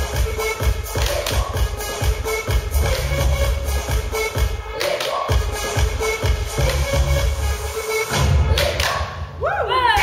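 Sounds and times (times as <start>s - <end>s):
upbeat dance music: 0.0s - 10.0s.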